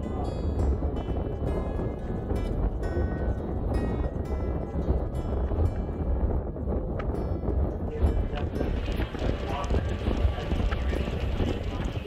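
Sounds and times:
boat engine rumble: 0.0s - 12.0s.

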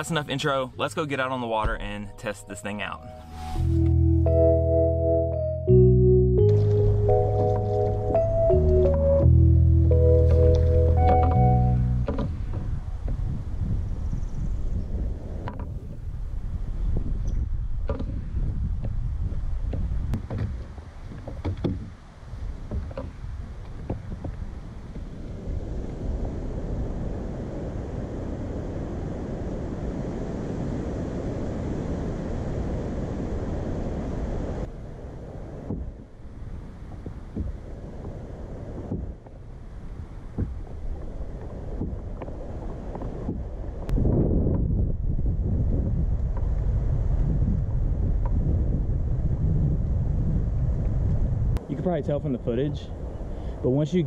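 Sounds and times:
wind buffeting microphone: 7.1s - 54.0s
water sounds from kayak: 14.9s - 17.1s, 17.8s - 45.2s.

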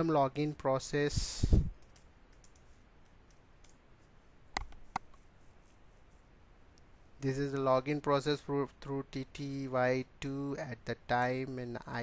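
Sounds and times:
keyboard keys typing: 1.8s - 2.7s.

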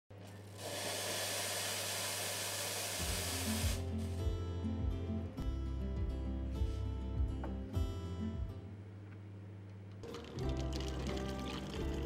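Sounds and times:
steam wand hissing: 0.6s - 3.8s
guitar music: 3.0s - 8.8s, 10.0s - 12.0s.

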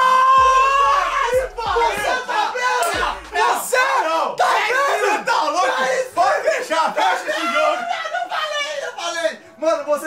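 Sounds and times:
young men yelling and cheering: 0.0s - 10.0s.

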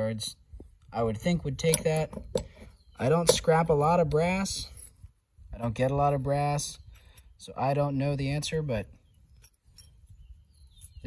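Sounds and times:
faint clicks of metal valve parts: 1.2s - 3.5s.

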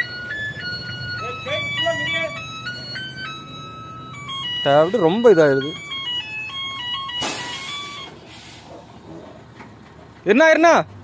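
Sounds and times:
simple electronic tune: 0.0s - 8.1s.

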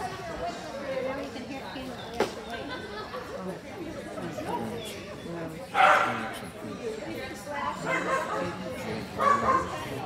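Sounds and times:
people chatting: 0.0s - 10.0s
dog barking: 5.8s - 6.2s, 9.2s - 9.8s.

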